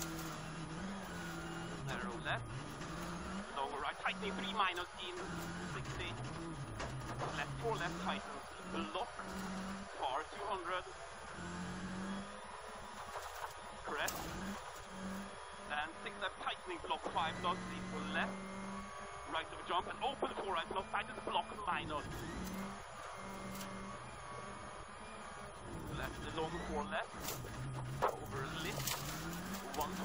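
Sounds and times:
car engine running hard: 0.0 - 30.0
tyres rumbling on gravel: 0.0 - 30.0.

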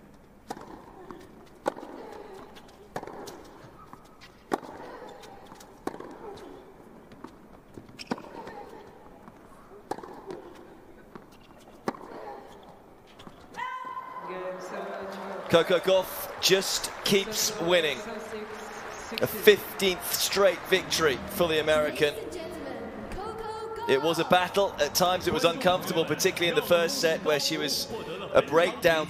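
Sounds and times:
racket striking tennis ball: 9.8 - 10.7.

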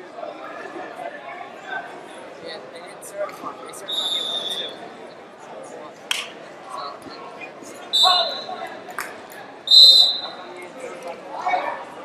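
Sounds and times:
murmur of busy hall: 0.0 - 12.0
referee's whistle blasts: 3.9 - 4.8, 7.9 - 8.6, 9.7 - 10.4.

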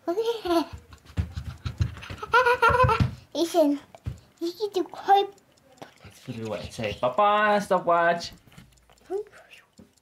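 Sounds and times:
small child wavering voice: 0.0 - 0.8.

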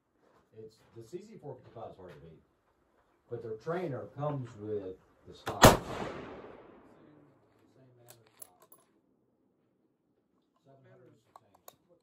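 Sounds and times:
rifle shot echo: 5.5 - 7.1.

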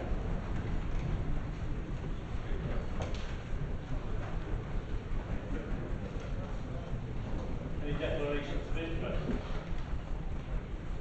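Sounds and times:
people sitting on wooden benches: 0.0 - 11.0.

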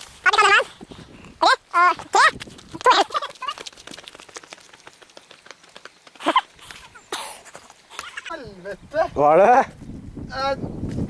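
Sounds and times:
footsteps on rock and scrub: 1.9 - 8.3.

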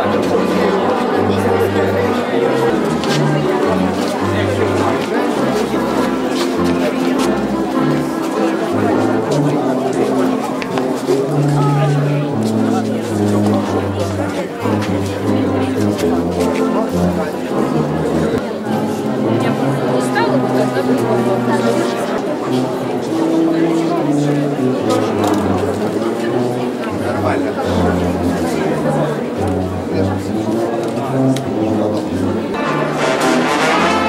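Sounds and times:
crowd chatter: 0.0 - 34.0.

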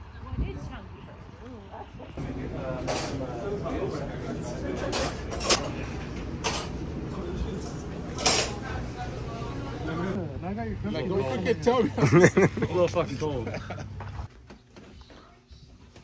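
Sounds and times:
indistinct chatter of people: 0.0 - 13.9.

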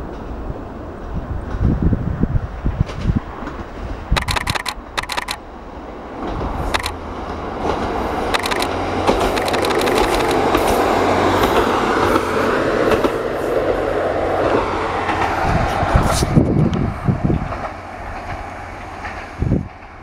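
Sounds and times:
diesel railcar passing: 0.0 - 20.0
wheels clacking over rail joints: 2.8 - 20.0.

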